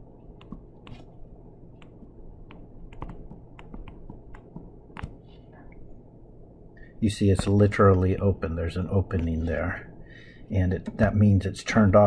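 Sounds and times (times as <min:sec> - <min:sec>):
low background hiss: 0:00.0 - 0:12.0
pen tapping on tablet screen: 0:01.8 - 0:05.2.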